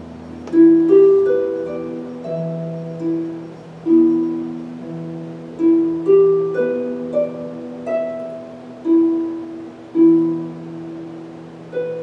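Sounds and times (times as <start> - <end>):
harp plucked notes: 0.0 - 12.0.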